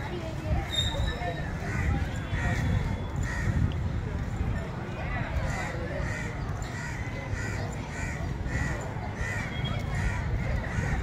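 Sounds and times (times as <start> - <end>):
crows cawing: 6.0 - 11.0.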